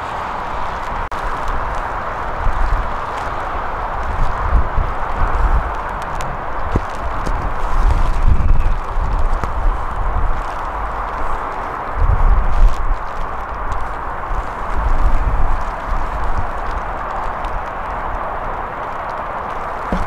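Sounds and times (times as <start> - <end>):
steady rushing wind: 0.0 - 20.0
wind buffeting microphone: 0.0 - 20.0.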